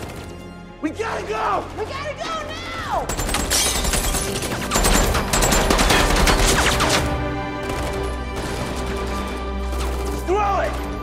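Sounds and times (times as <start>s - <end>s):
rapid automatic gunfire: 0.0s - 0.5s, 3.1s - 10.2s
background music with held notes: 0.0s - 11.0s.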